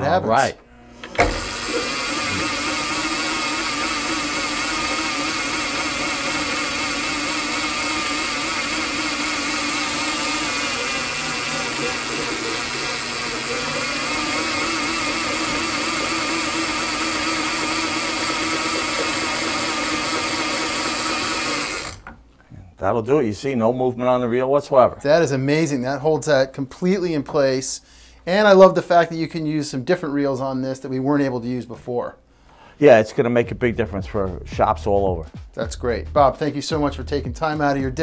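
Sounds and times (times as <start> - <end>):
electric line winder running: 0.4 - 22.2.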